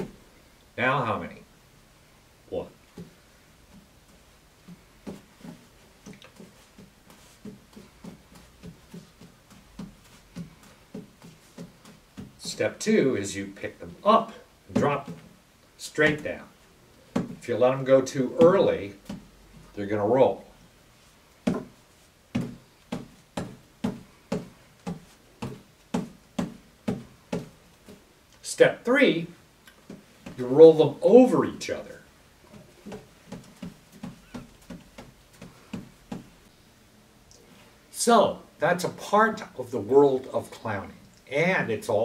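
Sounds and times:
juggling balls thudding on cloth: 0:02.8 - 0:12.9, 0:14.2 - 0:19.8, 0:21.0 - 0:28.2, 0:29.7 - 0:36.6.

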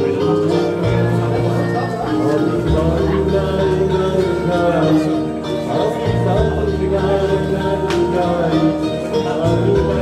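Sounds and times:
guitar backing track: 0:00.0 - 0:10.0
man singing into microphone: 0:00.0 - 0:10.0.

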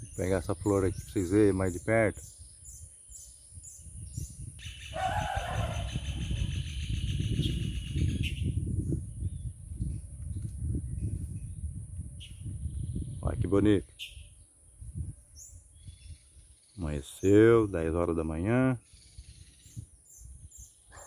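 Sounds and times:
birds calling: 0:00.0 - 0:08.6, 0:13.8 - 0:18.1
high-pitched insect buzz: 0:00.0 - 0:13.2, 0:13.8 - 0:16.8
dense trilling bird call: 0:04.6 - 0:08.6.

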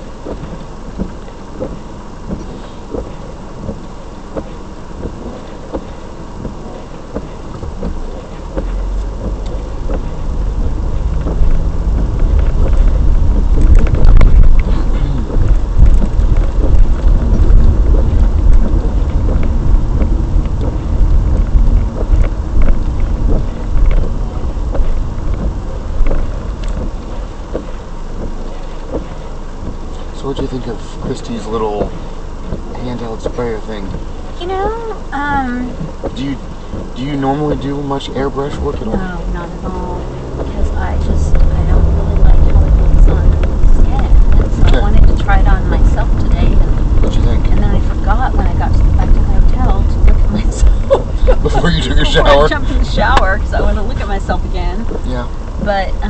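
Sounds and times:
faint regular ticking: 0:00.0 - 0:56.0
road and engine rumble: 0:00.0 - 0:56.0.

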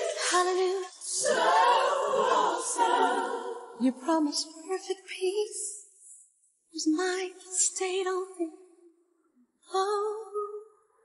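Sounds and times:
choir breath: 0:00.0 - 0:00.3, 0:01.0 - 0:03.8
unaccompanied gospel choir singing: 0:00.0 - 0:03.9.

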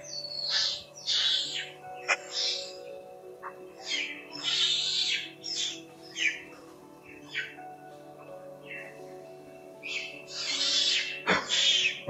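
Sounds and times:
background music: 0:00.0 - 0:12.0
infant monkey crying: 0:03.4 - 0:06.5, 0:09.8 - 0:12.0.

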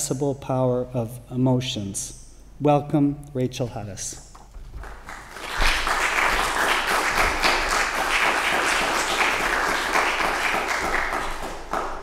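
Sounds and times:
audience applauding: 0:04.8 - 0:12.0.

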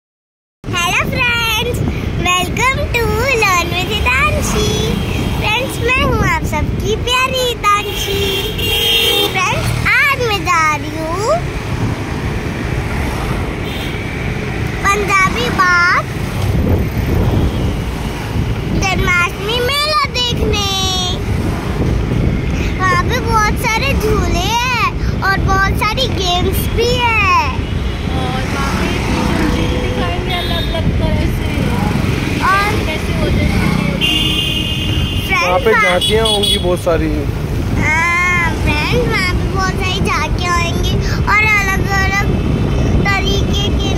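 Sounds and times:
road and engine noise: 0:00.6 - 0:43.9
girl's voice: 0:00.7 - 0:08.2, 0:09.1 - 0:11.6, 0:14.7 - 0:16.2, 0:18.7 - 0:21.3, 0:22.5 - 0:34.0, 0:35.2 - 0:36.0, 0:37.7 - 0:43.9
vehicle horn blast: 0:07.8 - 0:09.4, 0:34.0 - 0:36.9.

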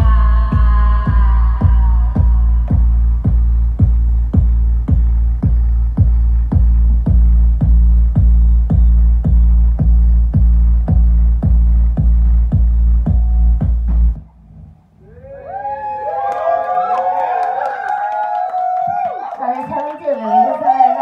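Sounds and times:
crowd whooping and cheering: 0:00.0 - 0:09.7, 0:15.0 - 0:21.0
electronic dance music: 0:00.0 - 0:14.2
heavy kick drum: 0:00.0 - 0:14.2.

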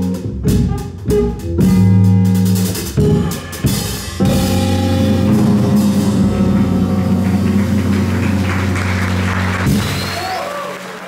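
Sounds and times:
jazz band chord: 0:00.0 - 0:09.9
applause: 0:06.6 - 0:11.0.

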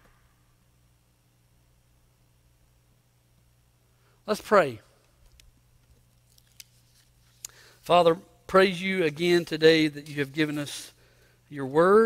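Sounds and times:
low steady hum: 0:00.0 - 0:12.0
man speaking: 0:04.3 - 0:04.9, 0:07.9 - 0:12.0.

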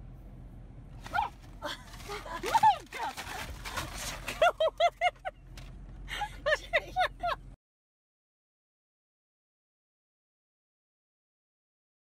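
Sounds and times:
scuffling: 0:01.0 - 0:06.0
woman shrieking and laughing: 0:01.1 - 0:03.3, 0:04.2 - 0:05.3, 0:06.1 - 0:07.4.

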